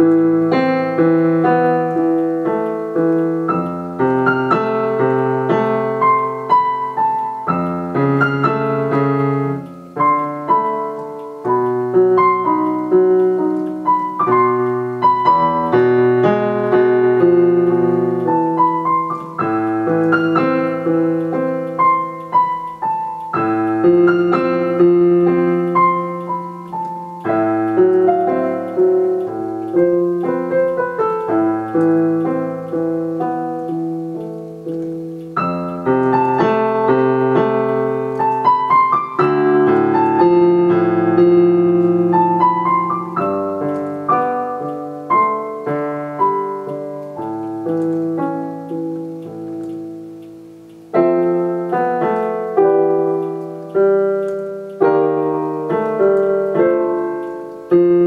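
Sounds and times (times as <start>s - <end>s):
solo piano piece: 0.0s - 58.0s.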